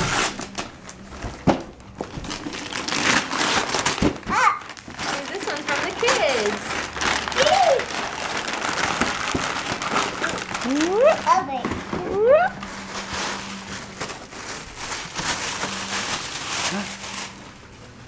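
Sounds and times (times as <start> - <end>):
paper crinkling: 2.0 - 18.0
young child's voice: 4.3 - 4.7, 7.4 - 7.9, 10.6 - 12.3.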